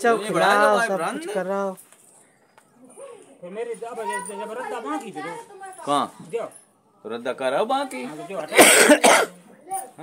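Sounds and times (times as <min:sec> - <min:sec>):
man coughing: 0:08.5 - 0:09.4.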